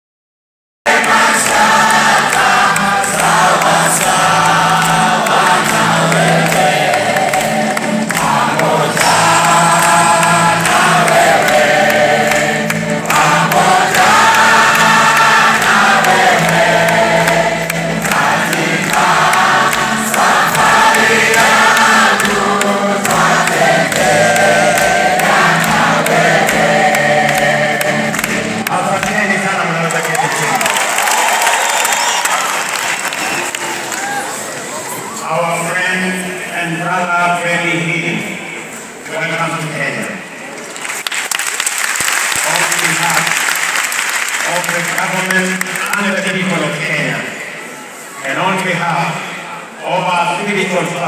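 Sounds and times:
choir singing gospel song: 0.9 - 29.8.

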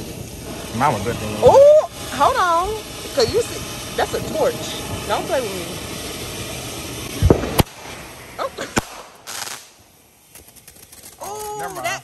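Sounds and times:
firework bangs: 0.0 - 12.0
firework hissing burst: 0.0 - 12.0.

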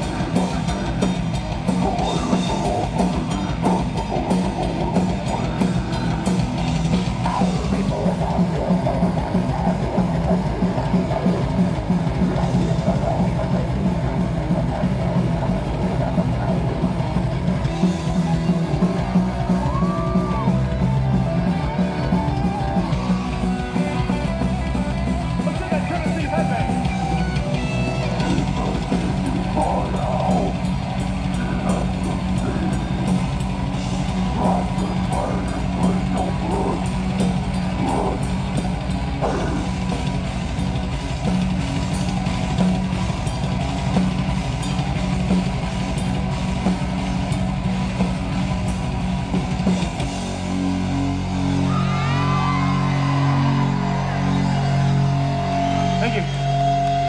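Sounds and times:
bass guitar: 0.0 - 57.0
distorted electric guitars: 0.0 - 57.0
fast drum kit: 0.0 - 57.0.

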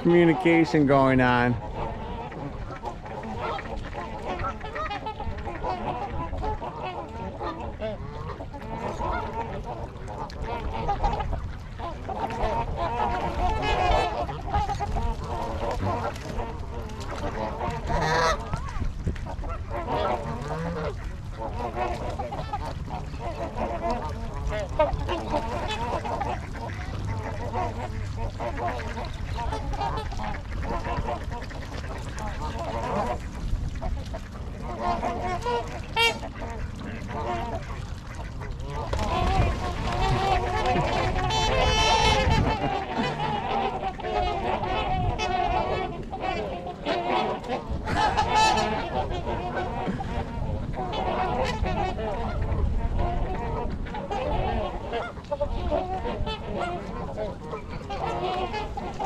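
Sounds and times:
geese and swans honking: 0.0 - 59.0.

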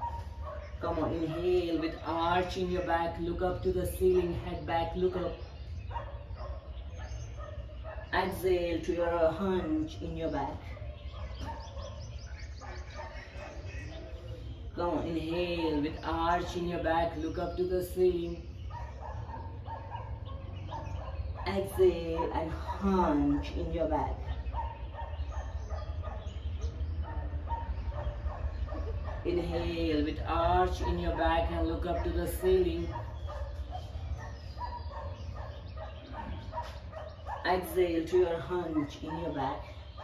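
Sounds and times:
bird calling: 4.0 - 40.0.

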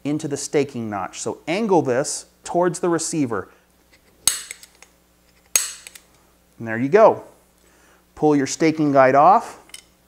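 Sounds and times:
center punch metallic snaps: 4.2 - 4.9, 5.5 - 6.1.

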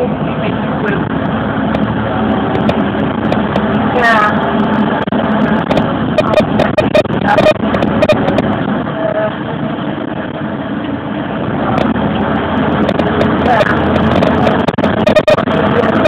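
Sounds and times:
bus engine and road noise: 0.0 - 16.0.

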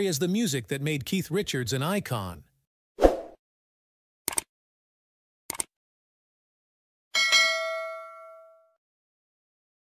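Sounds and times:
notification bell chime: 7.2 - 8.8.

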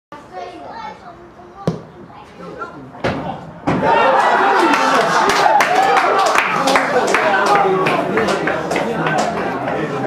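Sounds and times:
spectators talking and calling: 0.2 - 10.0.

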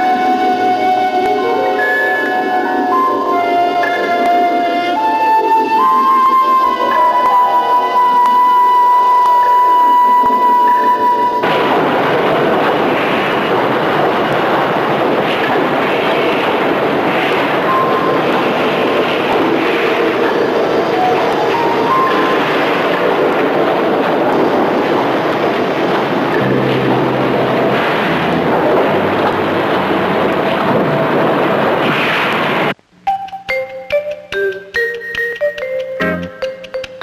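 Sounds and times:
industrial roar: 2.3 - 32.9.

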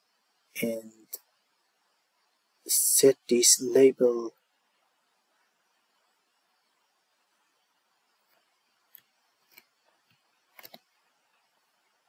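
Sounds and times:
computer mouse clicks: 8.3 - 11.0.

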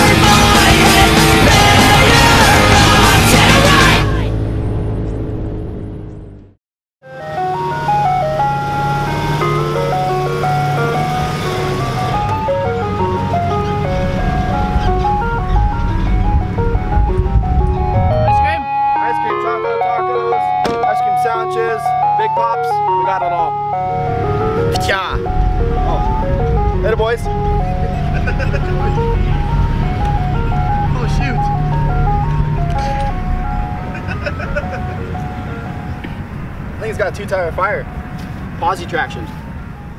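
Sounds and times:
loud music track: 0.0 - 4.4, 7.2 - 35.9
ice cream truck chime jingle: 7.0 - 39.9.

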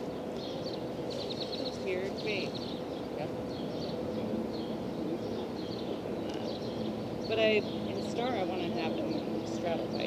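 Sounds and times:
low background noise: 0.0 - 10.0
small birds chirping: 0.0 - 10.0.

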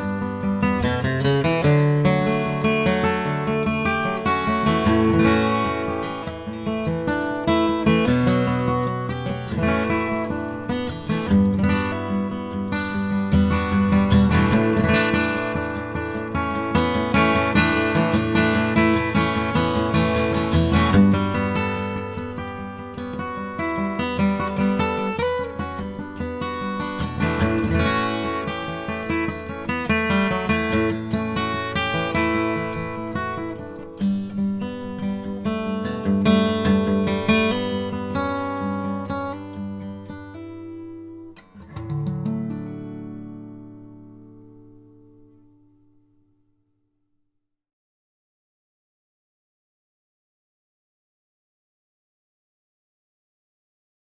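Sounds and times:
acoustic guitar chord-melody solo: 0.0 - 46.6.

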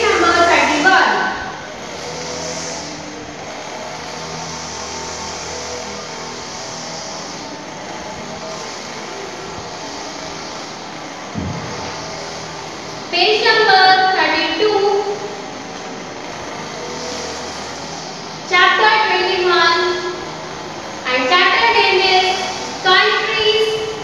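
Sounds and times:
thump: 11.4 - 11.9.

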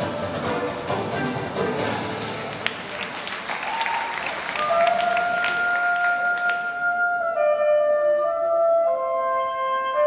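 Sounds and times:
performance music: 0.0 - 10.0
audience clapping: 1.7 - 6.8.

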